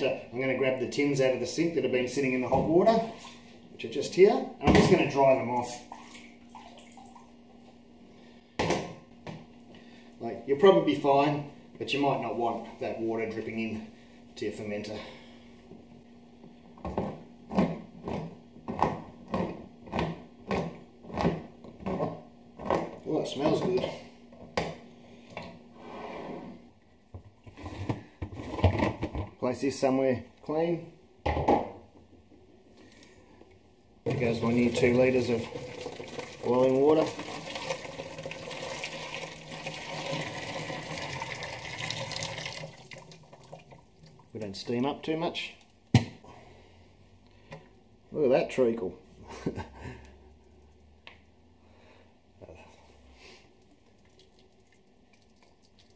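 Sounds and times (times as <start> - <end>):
water pouring into plastic bucket: 34.1 - 44.4.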